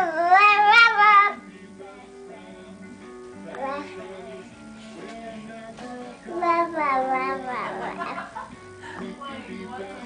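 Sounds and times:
child-like voice singing over music: 0:00.0 - 0:10.0.

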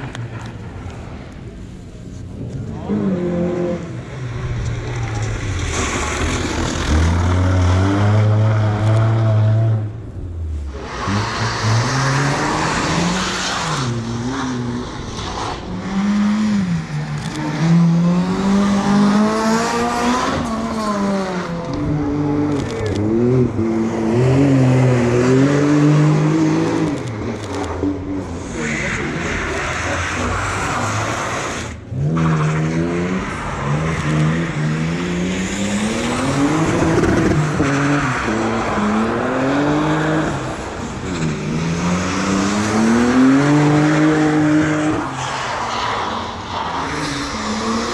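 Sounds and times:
car engines revving: 0:00.0 - 0:47.9.

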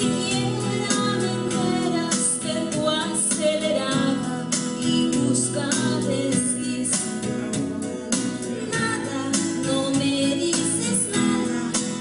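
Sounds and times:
instrumental accompaniment: 0:00.0 - 0:12.0
woman singing into microphone: 0:00.0 - 0:12.0.

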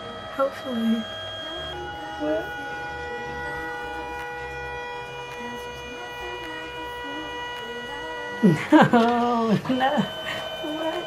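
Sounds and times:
low printer rumble: 0:00.0 - 0:11.0
photo printer whining: 0:00.0 - 0:11.0.

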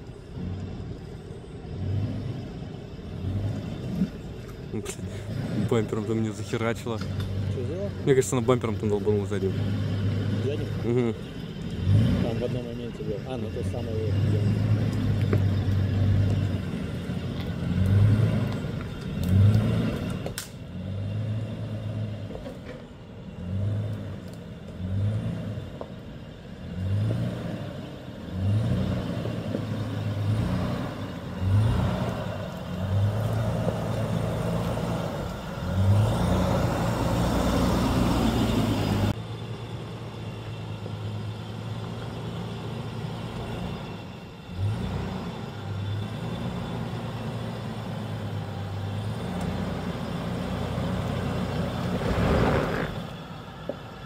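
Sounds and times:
engine throttling in pulses: 0:26.6 - 0:54.0
rushing noise: 0:51.8 - 0:53.4.

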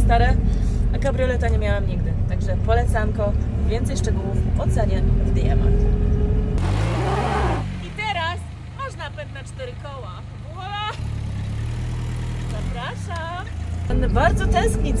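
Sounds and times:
diesel engine running: 0:00.0 - 0:15.0.

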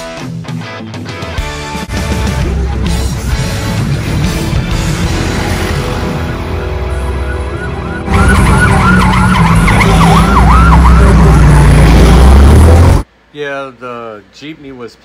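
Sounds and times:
music: 0:00.0 - 0:13.0
low vehicle rumble: 0:03.6 - 0:13.1
emergency vehicle siren yelping: 0:06.0 - 0:13.0.

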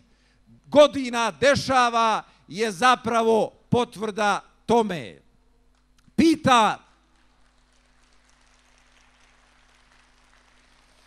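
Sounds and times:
faint low hum and hiss: 0:00.0 - 0:11.0.

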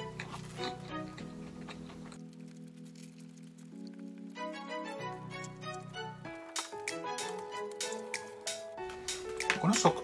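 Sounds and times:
toast being bitten and chewed: 0:00.0 - 0:04.5
soft background music: 0:00.0 - 0:10.0.

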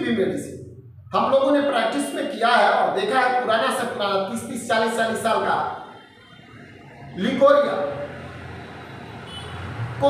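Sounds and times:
road traffic rumble: 0:05.1 - 0:10.0.

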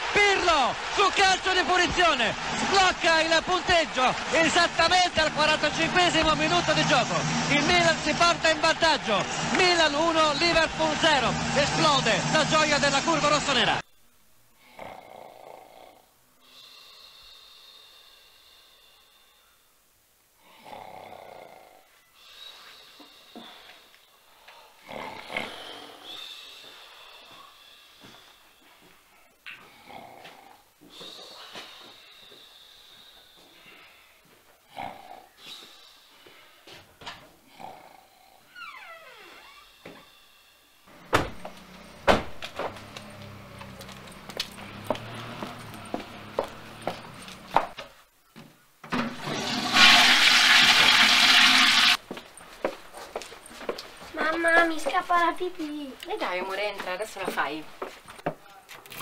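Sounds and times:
household movement: 0:40.9 - 0:50.6
toilet flushing: 0:49.0 - 0:52.0.

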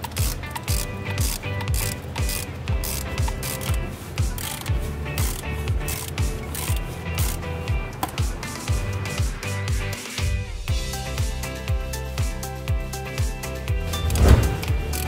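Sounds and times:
ratchet wrench clicking: 0:00.0 - 0:08.2
background music with steady beat: 0:00.0 - 0:15.0.

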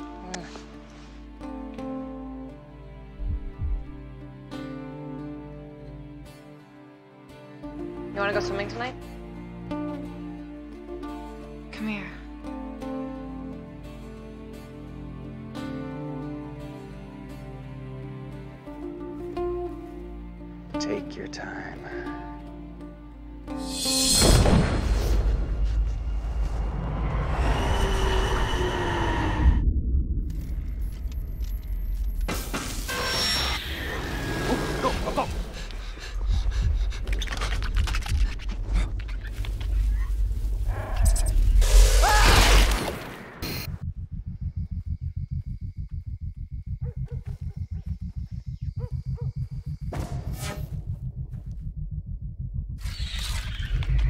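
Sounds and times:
low pulsing throb: 0:03.2 - 0:04.2, 0:23.6 - 0:32.3, 0:43.4 - 0:54.0
deep steady rumble: 0:25.4 - 0:32.3, 0:43.5 - 0:54.0
soft chirps: 0:43.7 - 0:54.0.

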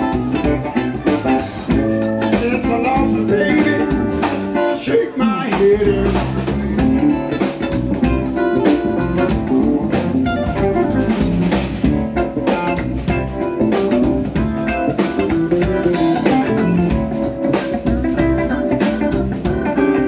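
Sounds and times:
drum kit: 0:00.0 - 0:20.0
electric bass: 0:00.0 - 0:20.0
electric guitars: 0:00.0 - 0:20.0
keyboard: 0:00.0 - 0:20.0.

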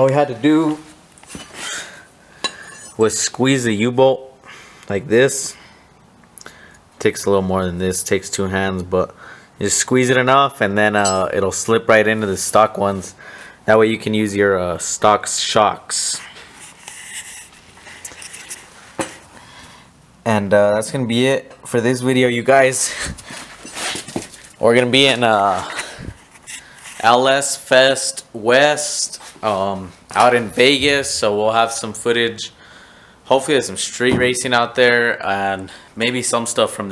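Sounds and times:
rustling and light scraping: 0:00.5 - 0:01.8, 0:16.0 - 0:19.3, 0:22.8 - 0:27.2, 0:28.9 - 0:30.8
light metal clinking: 0:11.0 - 0:11.4.

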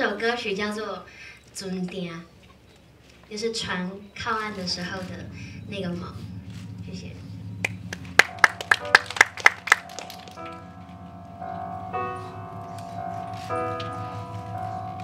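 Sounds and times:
soft keyboard notes: 0:04.2 - 0:15.0.

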